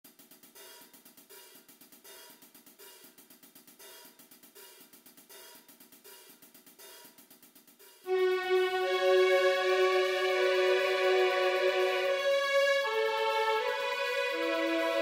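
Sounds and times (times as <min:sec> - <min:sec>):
soft cymbal-like percussion ticks: 0:00.1 - 0:15.0
faint low orchestral notes: 0:08.1 - 0:15.0.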